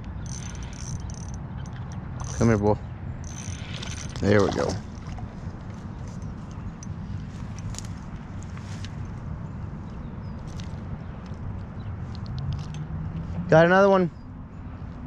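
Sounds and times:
fishing reel clicks and rustles: 0.0 - 9.2.

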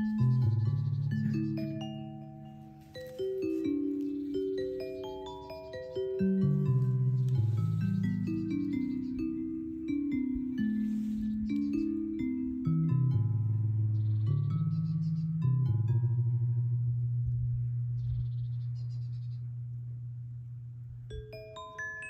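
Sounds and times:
sustained low synth tones: 11.6 - 21.3.

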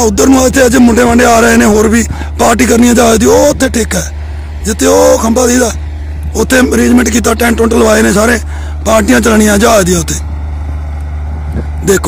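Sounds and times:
man speaking: 0.0 - 10.3, 11.8 - 12.0
crop sprayer engine drone: 0.0 - 12.0.

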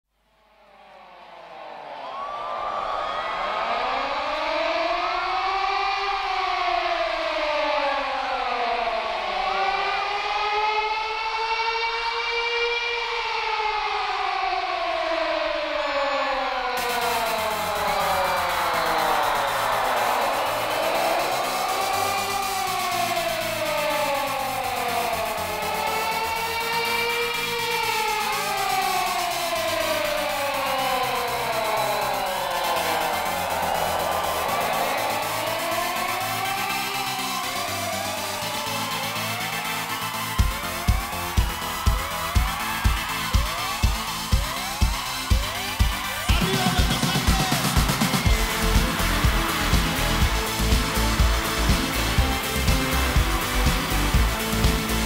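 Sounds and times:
siren-like wails: 0.2 - 55.0
low pulse: 16.6 - 36.6.

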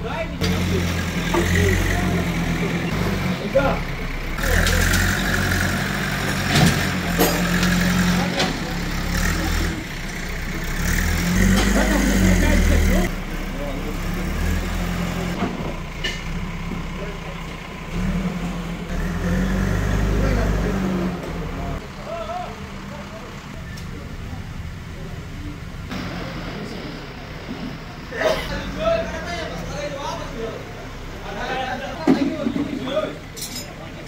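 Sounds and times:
diesel engine droning: 0.0 - 34.0.

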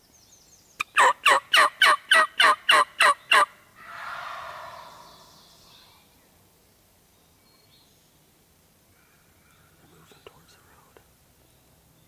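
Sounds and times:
turkey rattling gobble: 0.9 - 5.1
turkey yelps: 0.9 - 5.3.

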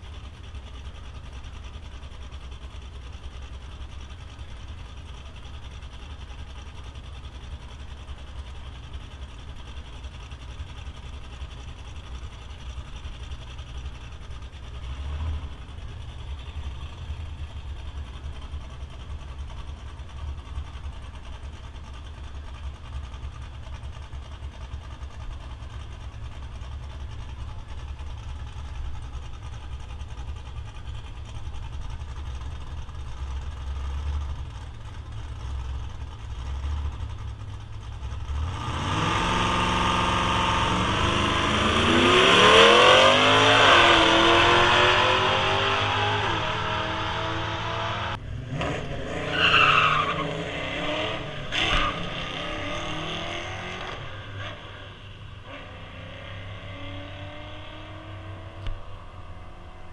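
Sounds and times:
drag racing car engine: 0.0 - 59.9.

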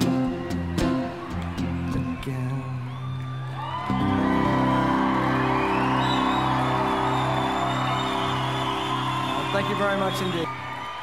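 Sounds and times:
audience cheering and whooping: 0.0 - 11.0.

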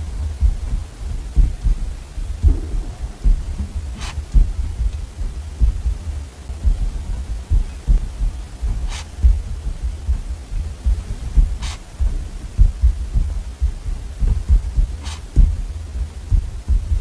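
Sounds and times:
sharp click: 15.0 - 15.4.

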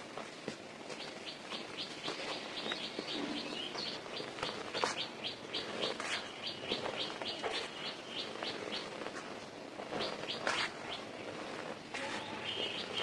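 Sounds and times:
bird chirping: 1.0 - 13.0.

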